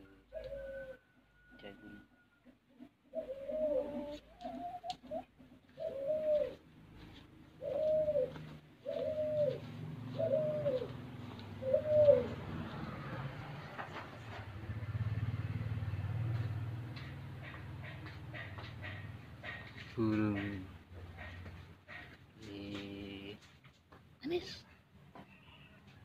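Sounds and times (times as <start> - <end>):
dove cooing: 0.0 - 22.9.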